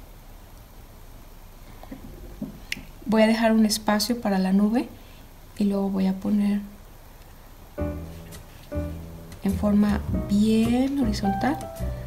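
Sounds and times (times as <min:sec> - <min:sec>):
person speaking: 0:09.4 - 0:12.0.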